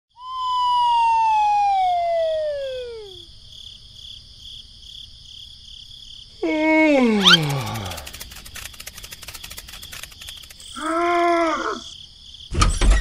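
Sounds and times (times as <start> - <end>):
siren-like tone sliding down: 0.2 - 3.2
faint high chirping pulse: 0.2 - 3.3.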